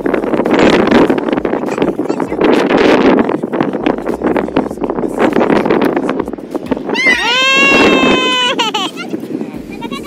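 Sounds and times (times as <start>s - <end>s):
boy yelling high-pitched: 7.0s - 9.2s.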